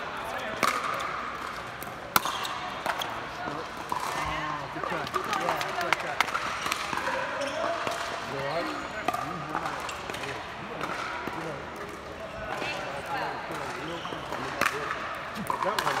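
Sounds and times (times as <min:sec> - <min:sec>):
murmur of voices: 0:00.0 - 0:16.0
pickleballs popping off paddles: 0:00.5 - 0:03.0, 0:03.8 - 0:07.1, 0:13.5 - 0:16.0.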